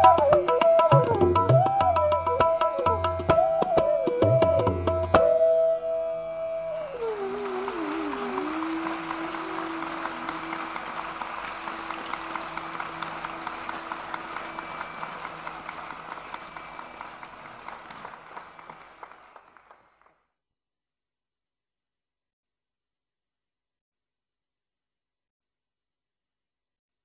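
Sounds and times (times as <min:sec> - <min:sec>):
audience applause: 0:06.8 - 0:20.2.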